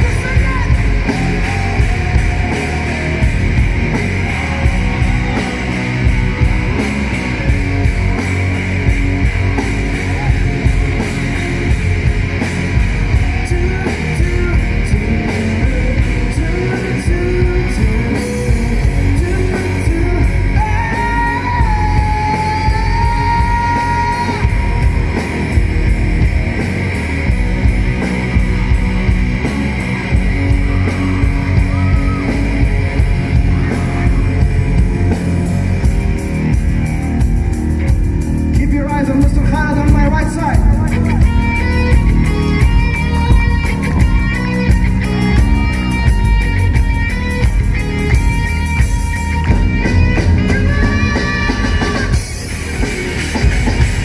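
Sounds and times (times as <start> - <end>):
person singing: 0.0 - 6.8, 13.1 - 25.1, 49.5 - 52.5
electric guitar: 0.0 - 54.0
loud rock music: 0.0 - 54.0.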